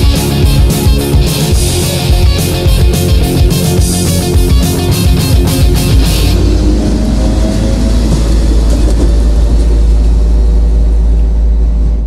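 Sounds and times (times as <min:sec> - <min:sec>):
punk rock chord ringing: 0:00.0 - 0:11.2
deep bass rumble: 0:00.0 - 0:12.0
drums: 0:00.0 - 0:12.0.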